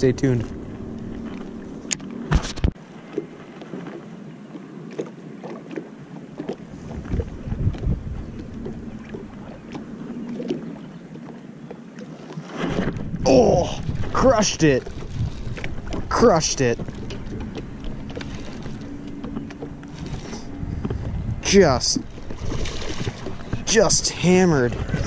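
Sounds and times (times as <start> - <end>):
waves lapping against boat hull: 0.0 - 25.0
wind buffeting microphone: 6.4 - 11.0, 12.7 - 25.0.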